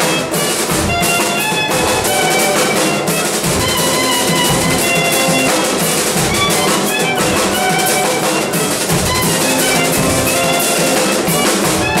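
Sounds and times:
band playing instrumental music: 0:00.0 - 0:12.0
drum kit beat: 0:00.0 - 0:12.0.

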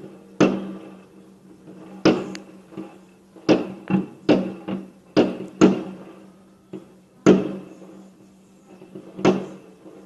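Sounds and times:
firework bang: 0:00.0 - 0:01.0, 0:01.7 - 0:06.2, 0:06.8 - 0:08.1, 0:08.8 - 0:10.0.

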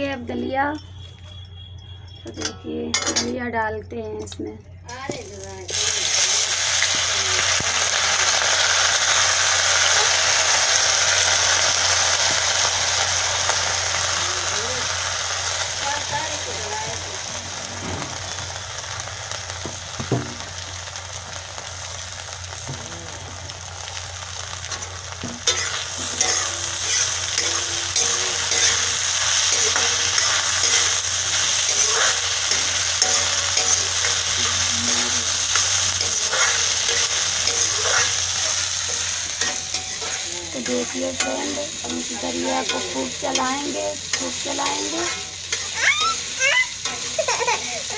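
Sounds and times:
steel ladle stirring: 0:00.8 - 0:04.3, 0:24.7 - 0:45.8
wheat sizzling in hot oil: 0:05.0 - 0:47.9.

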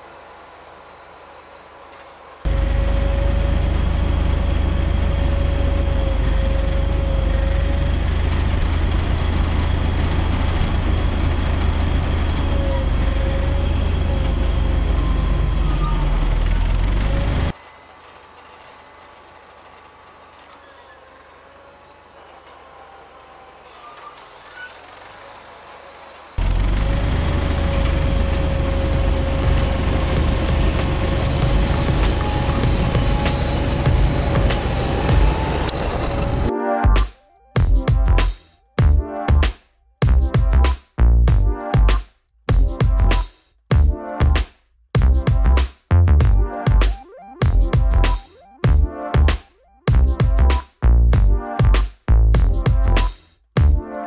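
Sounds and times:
tractor engine rumbling: 0:00.0 - 0:44.4.

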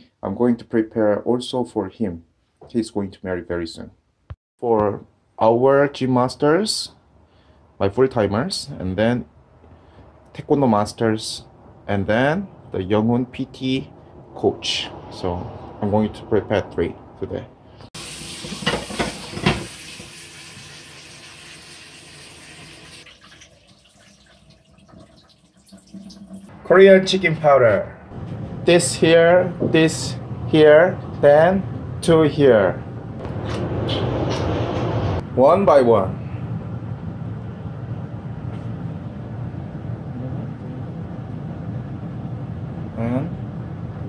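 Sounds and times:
tap water running into metal bowl: 0:18.0 - 0:26.5.

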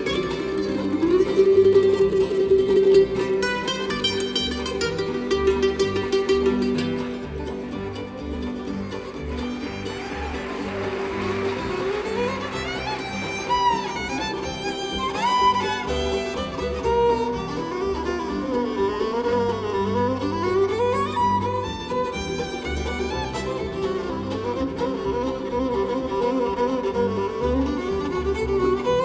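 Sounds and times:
bowed fiddle sliding notes: 0:00.0 - 0:29.0
mandolin backing: 0:00.0 - 0:29.0.

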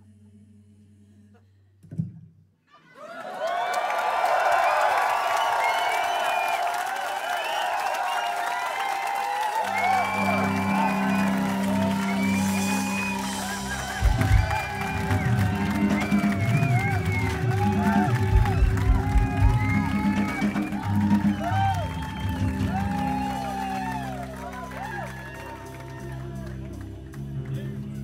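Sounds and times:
audience cheering and whooping: 0:02.8 - 0:26.9
band playing low chord: 0:09.7 - 0:21.2.

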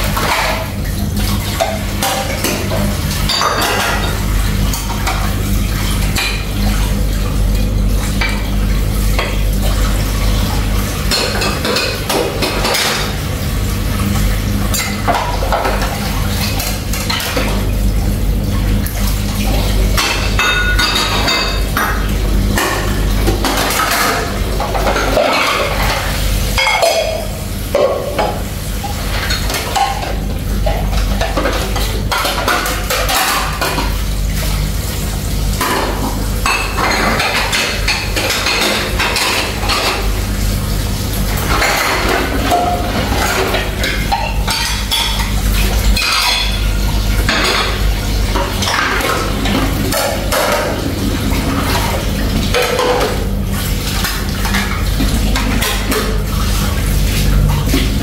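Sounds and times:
dishes clinking in a sink: 0:00.0 - 0:06.9, 0:08.0 - 0:13.3, 0:14.1 - 0:17.7, 0:18.8 - 0:34.4, 0:35.5 - 0:40.2, 0:41.2 - 0:58.0
tap water running: 0:00.0 - 0:58.0.

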